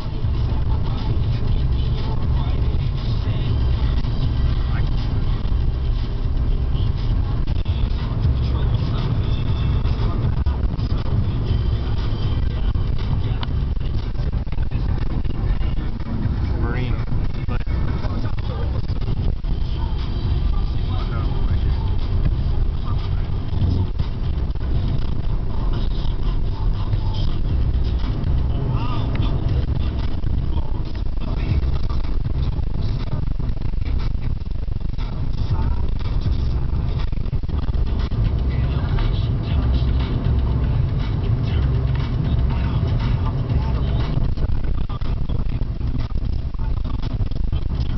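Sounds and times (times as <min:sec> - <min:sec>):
car engine and tyres rumbling: 0:00.0 - 0:47.9
faint indistinct voices: 0:00.0 - 0:47.9.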